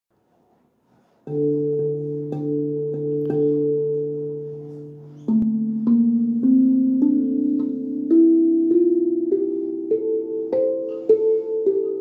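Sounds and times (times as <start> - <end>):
steel tongue drum notes: 1.2 - 12.0.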